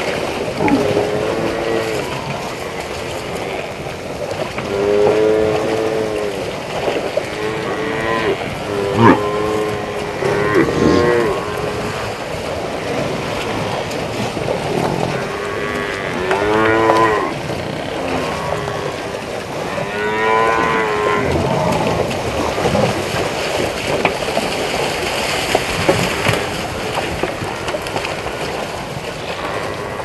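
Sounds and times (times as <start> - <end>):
buffalo lowing: 0.6 - 2.6, 7.2 - 12.2.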